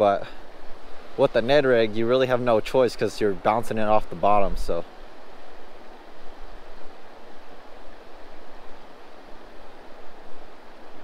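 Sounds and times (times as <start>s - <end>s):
small waves lapping on shore: 0.0s - 11.0s.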